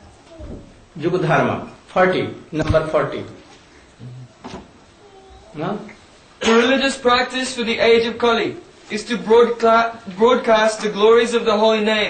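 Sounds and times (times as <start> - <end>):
man speaking: 5.6 - 12.0.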